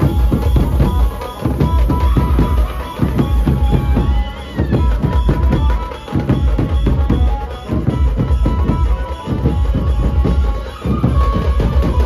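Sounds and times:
barrel drums beating fast: 0:00.0 - 0:12.0
high wavering melody: 0:00.0 - 0:12.0.

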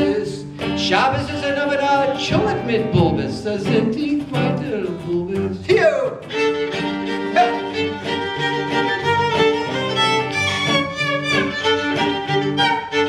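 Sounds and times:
acoustic guitar accompaniment: 0:00.0 - 0:13.0
violin playing lively melody: 0:06.2 - 0:13.0.

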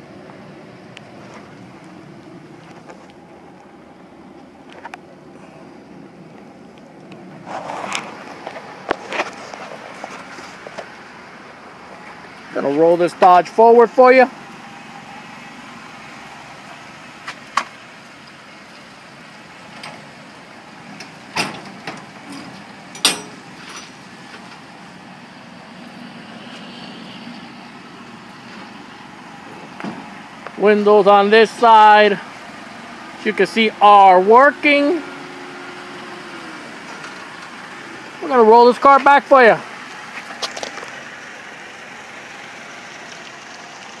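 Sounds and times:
car engine running at low speed: 0:00.0 - 0:44.0.

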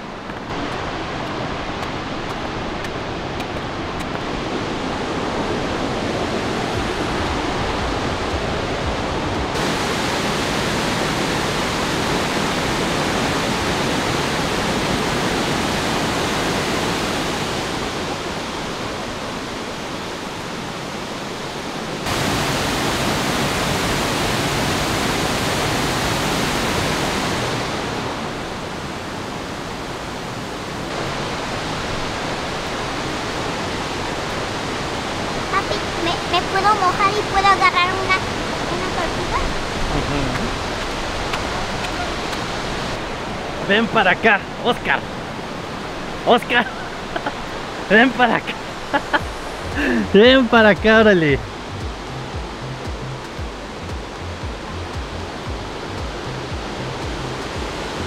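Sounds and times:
waterfall roaring: 0:00.0 - 0:58.0.

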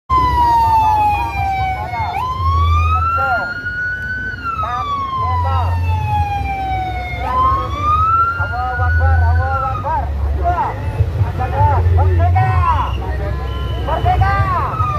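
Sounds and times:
wailing siren: 0:00.1 - 0:10.1, 0:13.7 - 0:14.9.

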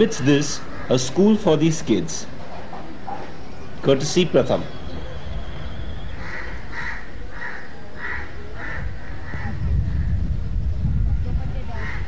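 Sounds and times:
crows cawing: 0:00.4 - 0:01.2, 0:06.2 - 0:09.6, 0:11.8 - 0:12.0.

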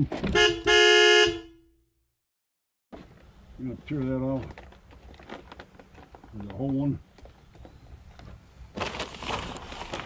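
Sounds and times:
vehicle horn honk: 0:00.3 - 0:01.7.

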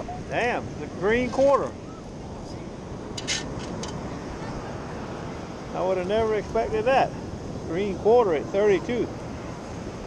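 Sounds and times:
surf: 0:00.0 - 0:10.0
wind: 0:00.0 - 0:10.0
sand scoop scraping clinks: 0:03.2 - 0:04.0.

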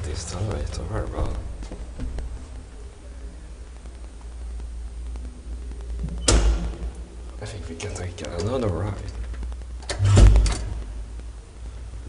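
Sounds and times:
steady low hum: 0:00.0 - 0:12.0
elevator door bang: 0:06.2 - 0:06.9, 0:09.9 - 0:10.8.

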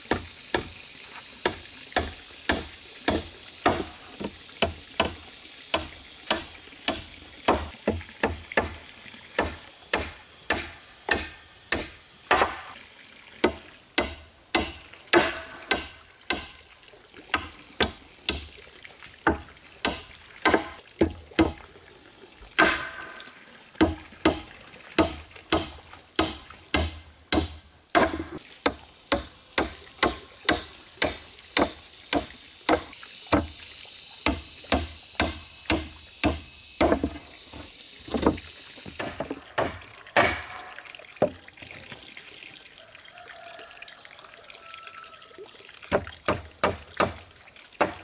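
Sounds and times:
water pouring into pond: 0:00.0 - 0:48.0
hammer striking wooden planks: 0:01.4 - 0:08.8, 0:09.4 - 0:12.7, 0:13.4 - 0:16.6, 0:19.3 - 0:21.6, 0:23.8 - 0:33.5, 0:34.2 - 0:37.2, 0:38.1 - 0:40.6, 0:45.9 - 0:47.2.

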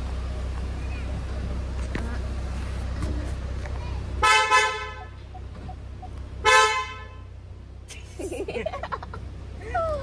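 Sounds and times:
traffic rumble: 0:00.0 - 0:10.0
vehicle horn honking: 0:04.2 - 0:05.2, 0:06.4 - 0:07.3.

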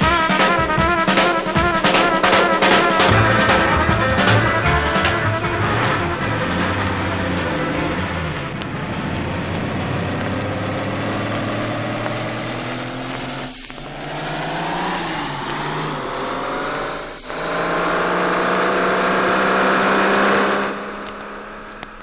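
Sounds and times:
vinyl crackle and clicks: 0:00.0 - 0:22.0
steady low note: 0:03.1 - 0:11.0
buzzing tone gliding upward: 0:05.1 - 0:22.0.

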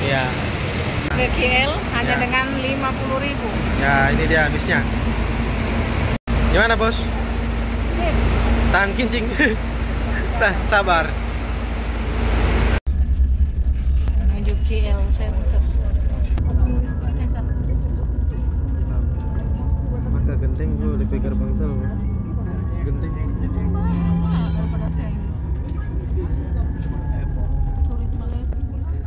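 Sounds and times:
coach engine and tyres rumbling: 0:00.0 - 0:29.0.

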